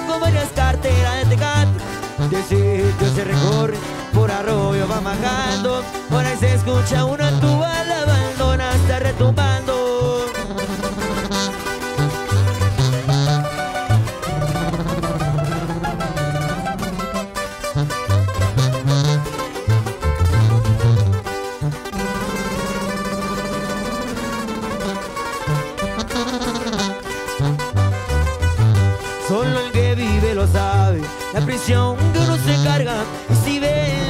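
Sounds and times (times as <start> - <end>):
sousaphone bass line: 0.0 - 34.0
strummed acoustic guitars: 0.0 - 34.0
plucked-string runs: 9.4 - 30.0.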